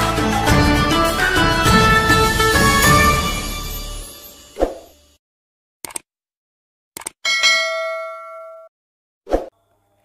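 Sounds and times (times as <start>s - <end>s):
notification bell ding: 7.3s - 8.7s.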